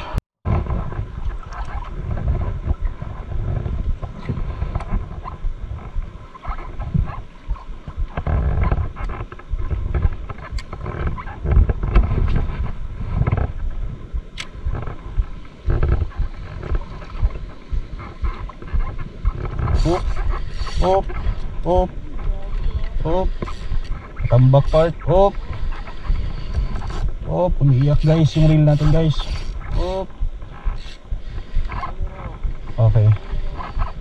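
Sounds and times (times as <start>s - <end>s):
wind buffeting microphone: 0.0s - 34.0s
fishing reel rustling and clicking: 0.6s - 13.7s, 14.3s - 34.0s
man calling oop: 27.2s - 30.2s.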